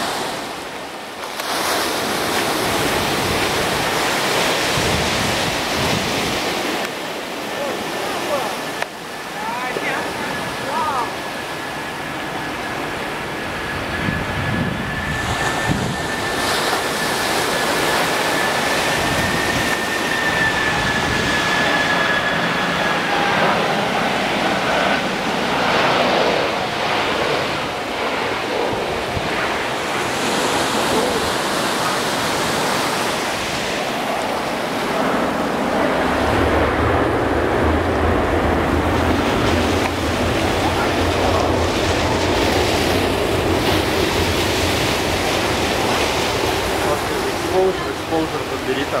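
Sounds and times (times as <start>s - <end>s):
jet engines roaring: 0.0s - 49.0s
high engine whine: 2.0s - 49.0s.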